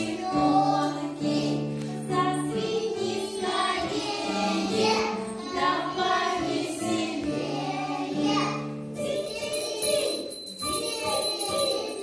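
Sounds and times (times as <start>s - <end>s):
group of voices singing: 2.2s - 9.1s.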